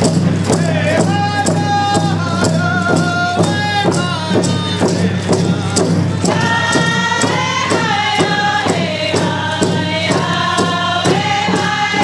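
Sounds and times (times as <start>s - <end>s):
frame drums beating: 0.0s - 12.0s
group singing in unison: 0.4s - 12.0s.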